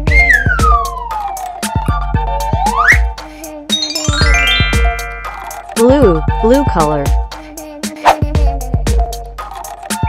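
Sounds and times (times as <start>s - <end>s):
cartoon whistle sliding down: 0.0s - 0.9s
upbeat children's music: 0.0s - 10.0s.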